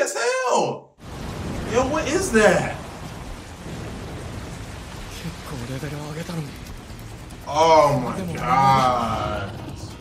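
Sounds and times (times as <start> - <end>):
steady rushing roar: 1.0 - 10.0.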